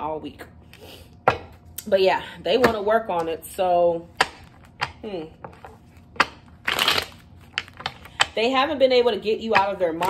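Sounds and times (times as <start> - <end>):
cards being shuffled: 4.2 - 8.2.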